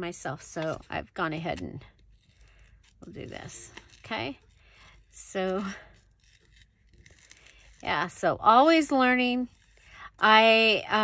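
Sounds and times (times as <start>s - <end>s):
scissors cutting paper: 0.4s - 10.6s.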